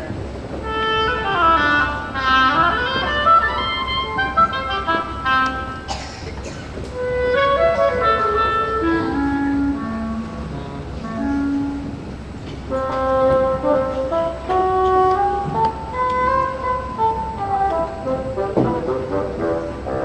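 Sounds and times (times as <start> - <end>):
woodwind quintet playing: 0.0 - 6.0, 6.7 - 20.0.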